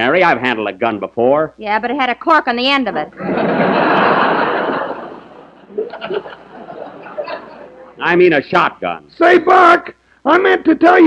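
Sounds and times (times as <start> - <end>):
audience laughing: 3.1 - 8.0.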